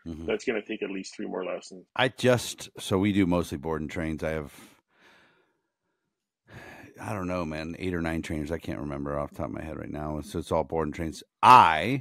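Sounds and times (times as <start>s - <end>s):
man speaking: 0.0s - 4.5s, 7.0s - 12.0s
man breathing in: 4.6s - 7.0s.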